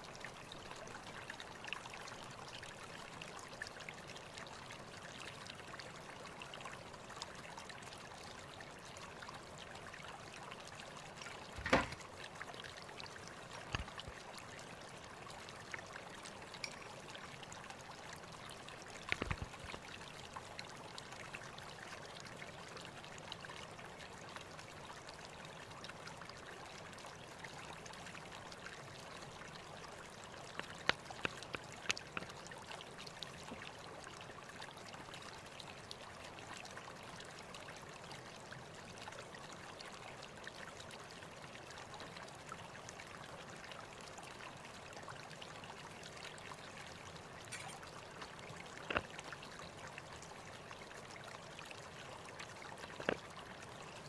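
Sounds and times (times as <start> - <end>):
faint sharp clicks and knocks: 11.5 - 12.0, 13.6 - 14.1, 19.1 - 19.8, 30.5 - 32.4, 48.8 - 49.2, 53.0 - 53.2.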